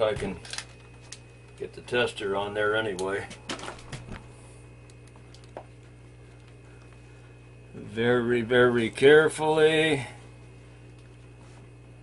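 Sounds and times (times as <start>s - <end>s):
steady low hum: 0.0s - 12.0s
small clicks: 4.8s - 7.0s.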